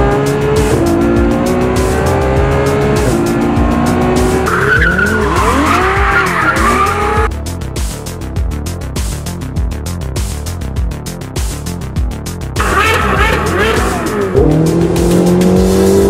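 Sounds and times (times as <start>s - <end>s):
sports car engine revving: 0.0s - 7.3s, 12.6s - 16.0s
electronic music with beat: 0.0s - 16.0s
tyres squealing: 4.4s - 7.3s.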